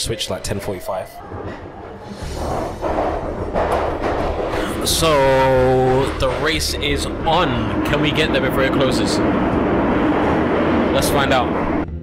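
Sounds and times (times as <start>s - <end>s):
underground train rumbling: 0.0s - 12.0s.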